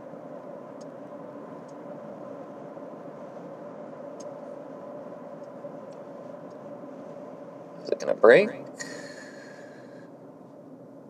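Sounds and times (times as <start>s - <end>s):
car cabin road and engine noise: 0.0s - 11.0s.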